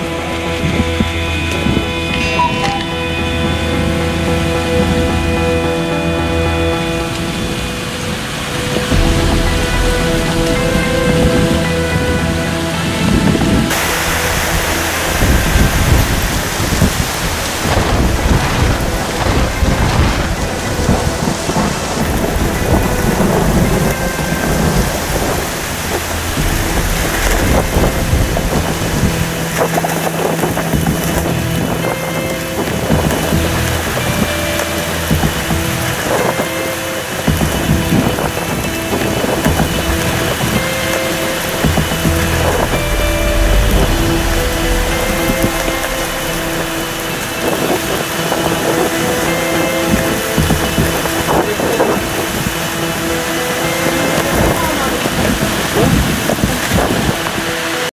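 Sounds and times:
thunder rumbling: 0:00.0 - 0:57.4
heavy rain: 0:00.0 - 0:57.9
wind hissing: 0:00.0 - 0:57.9.

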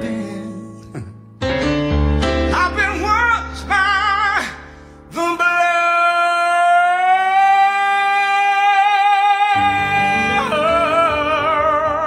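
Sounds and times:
singer holding long note: 0:06.6 - 0:12.0.

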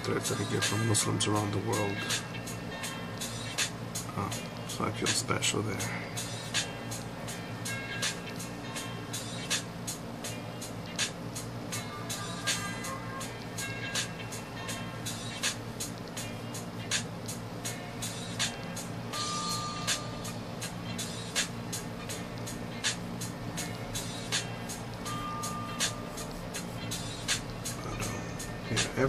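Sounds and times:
background music with steady beat: 0:00.0 - 0:29.0.

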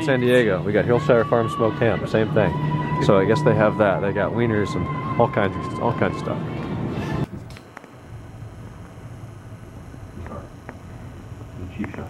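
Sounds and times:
wood fire burning: 0:07.2 - 0:12.0.

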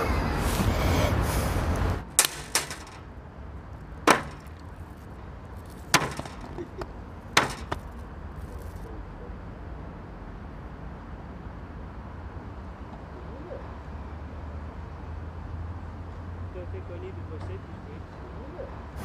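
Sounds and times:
metal popping in water: 0:02.2 - 0:03.0.

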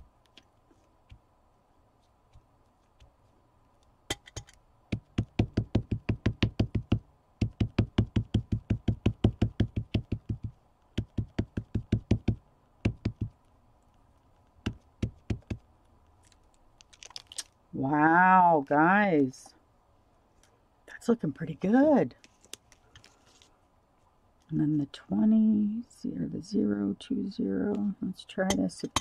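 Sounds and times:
rubber stamp knocking on card: 0:04.9 - 0:13.3.

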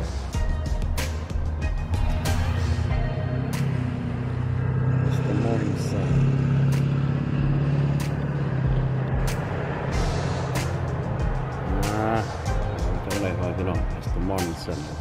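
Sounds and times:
vehicle engine running: 0:00.0 - 0:15.0
music with click-like beat: 0:07.9 - 0:15.0.

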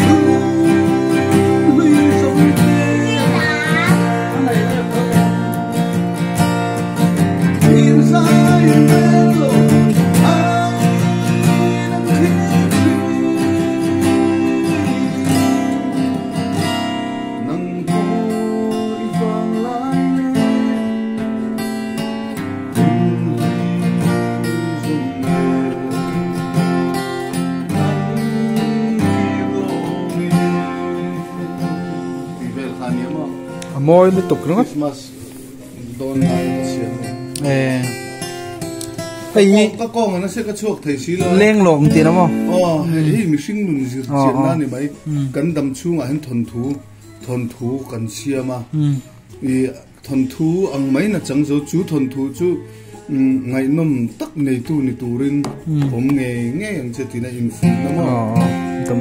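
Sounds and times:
man singing: 0:00.0 - 0:05.9, 0:07.4 - 0:21.6, 0:22.3 - 0:34.4, 0:35.9 - 0:38.0, 0:40.9 - 0:59.0
acoustic guitar strumming: 0:00.0 - 0:59.0.

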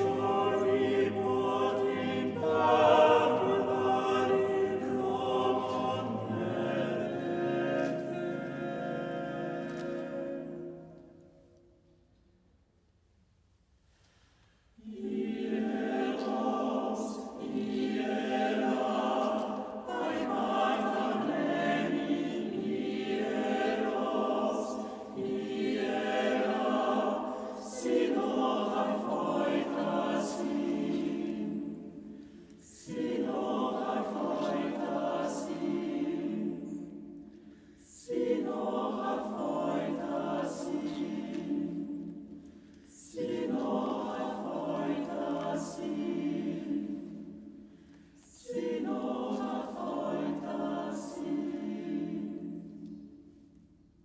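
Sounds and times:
choir singing a cappella: 0:00.0 - 0:11.6, 0:14.6 - 0:54.0.

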